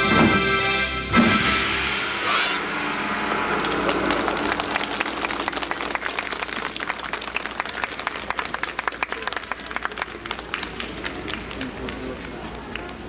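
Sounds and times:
backing music: 0.0s - 6.6s
audience applause: 3.2s - 13.0s.

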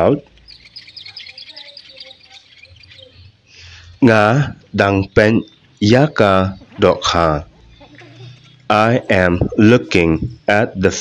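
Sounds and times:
bird chirps: 0.0s - 11.0s.

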